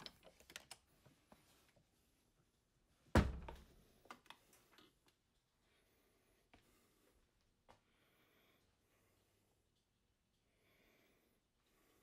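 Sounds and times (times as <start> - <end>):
faint handling clicks and rustles: 0.0 - 2.7
door thudding shut: 3.2 - 3.6.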